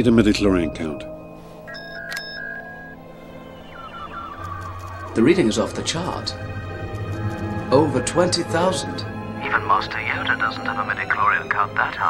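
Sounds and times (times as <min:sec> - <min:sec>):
electronic computer beeps and tones: 0:01.6 - 0:07.2.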